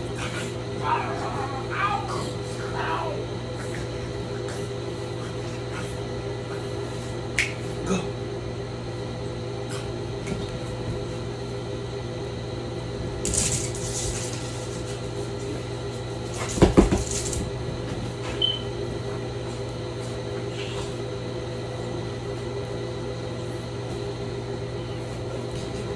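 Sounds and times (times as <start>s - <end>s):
electrical hum: 0.0s - 25.9s
knocks and thumps: 16.4s - 17.2s.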